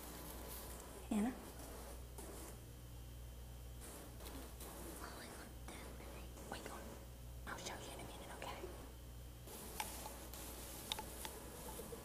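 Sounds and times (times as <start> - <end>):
low electrical hum: 0.0 - 12.0
whispering and hushed talk: 4.9 - 8.9.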